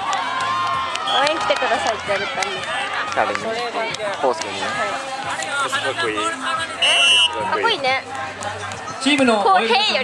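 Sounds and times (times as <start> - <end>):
voices calling and shouting: 1.0 - 10.0.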